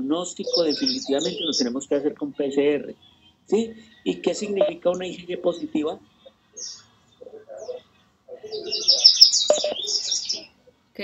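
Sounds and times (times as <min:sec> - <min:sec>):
birds chirping: 0:00.0 - 0:10.7.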